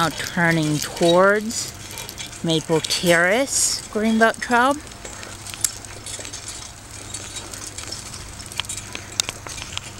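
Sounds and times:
bicycle rolling on concrete: 0.0s - 9.9s.

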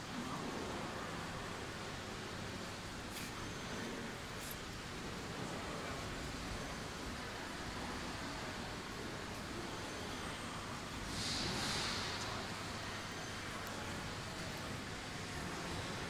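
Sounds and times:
indoor hall background hiss: 0.0s - 16.0s.

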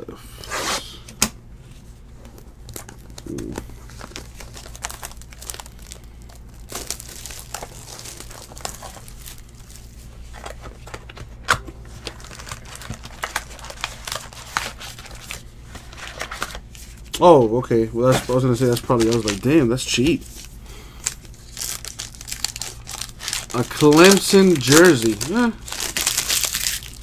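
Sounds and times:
plastic wrap crinkling: 2.3s - 17.2s, 18.0s - 27.0s.

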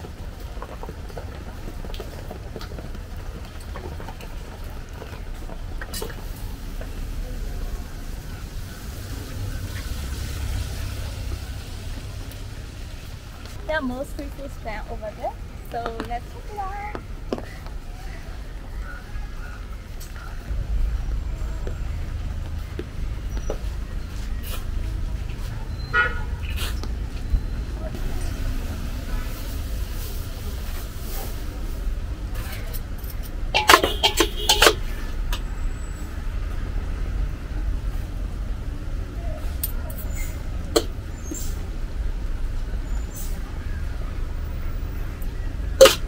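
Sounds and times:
street rumble: 0.0s - 46.0s
vehicle horn tooting: 25.9s - 26.4s, 33.6s - 35.0s.

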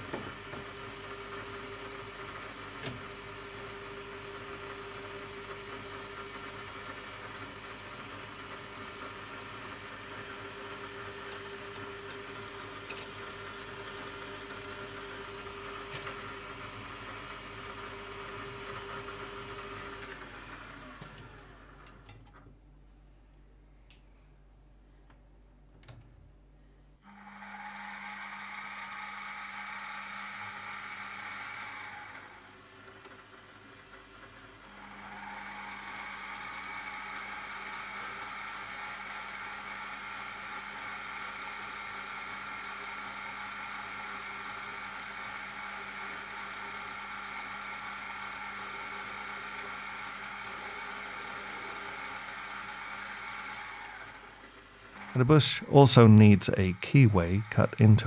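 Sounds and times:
mill motor drilling brass: 3.1s - 21.4s, 27.1s - 58.0s.

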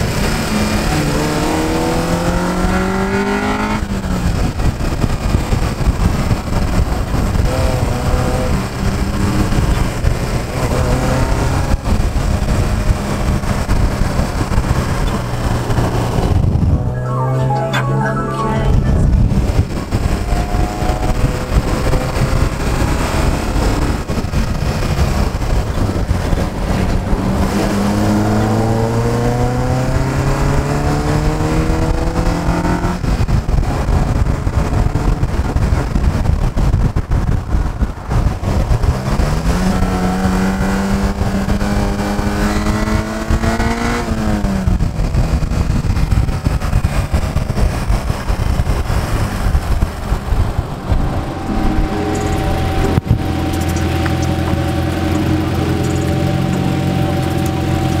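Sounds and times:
wind and road noise: 0.0s - 17.7s, 18.7s - 58.0s
car engine accelerating: 0.0s - 58.0s
car engine idling: 48.9s - 58.0s.

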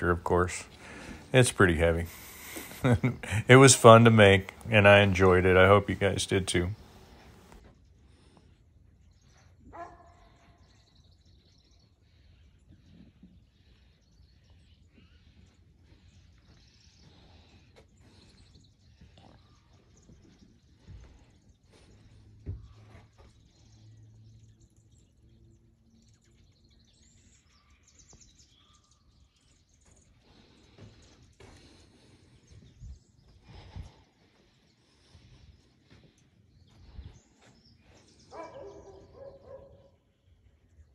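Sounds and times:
faint bird chirps: 6.6s - 40.9s.

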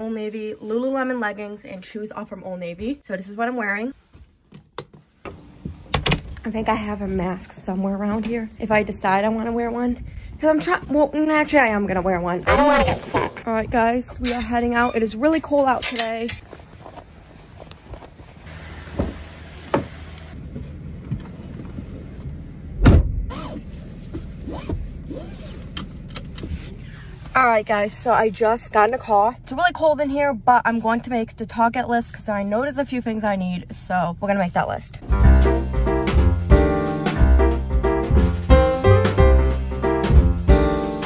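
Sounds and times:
car door shutting: 18.9s - 20.1s, 22.8s - 23.2s
seatbelt being pulled: 23.3s - 25.7s.

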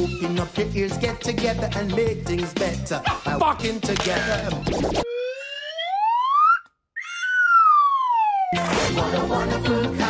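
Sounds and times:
music: 0.0s - 5.0s, 8.6s - 10.0s
cartoon whistle sliding in pitch: 5.0s - 8.6s.

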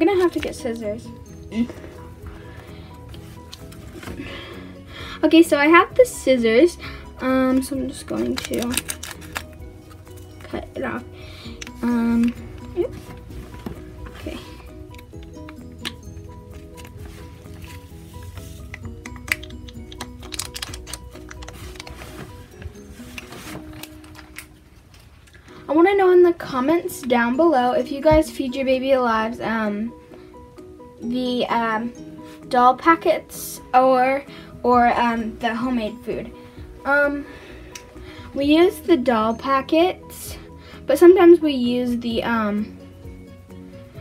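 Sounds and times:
soft background music: 0.0s - 44.0s
foil packet crinkling: 8.1s - 10.0s, 19.2s - 22.4s.

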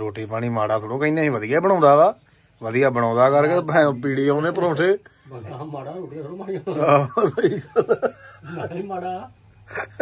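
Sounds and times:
person laughing: 6.8s - 8.8s, 9.7s - 10.0s.

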